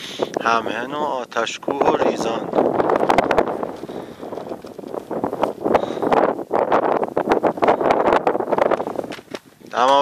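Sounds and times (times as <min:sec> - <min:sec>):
wind buffeting microphone: 0:00.0 - 0:10.0
rough crackling bursts: 0:02.6 - 0:10.0.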